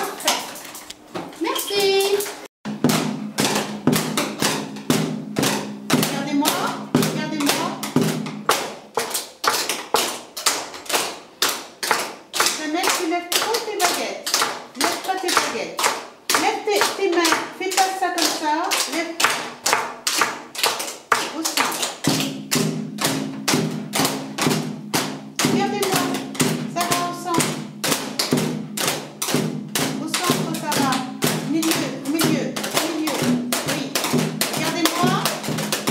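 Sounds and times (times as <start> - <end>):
drumsticks beating on chairs: 0.0 - 35.9.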